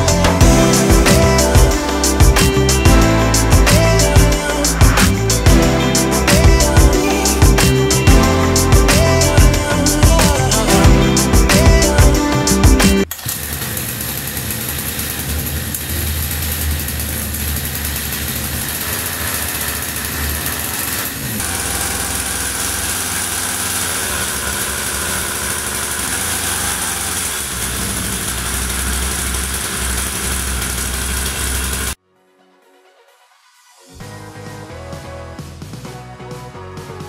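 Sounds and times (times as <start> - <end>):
background music: 0.0 - 13.1, 32.0 - 37.0
small two-stroke engine running: 13.1 - 32.0.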